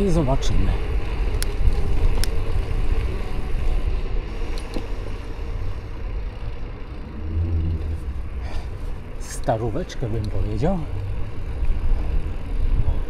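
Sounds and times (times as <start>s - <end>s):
bike tyres on gravel: 0.0s - 13.0s
low hum: 0.9s - 13.0s
wind on microphone: 7.0s - 9.2s.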